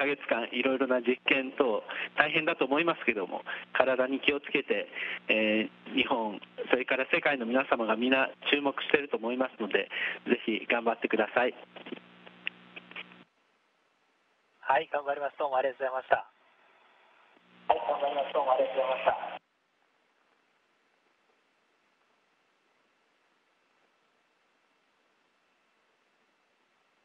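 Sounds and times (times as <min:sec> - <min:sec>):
radio click: 0:11.5 - 0:13.2
person talking over radio: 0:17.7 - 0:19.4.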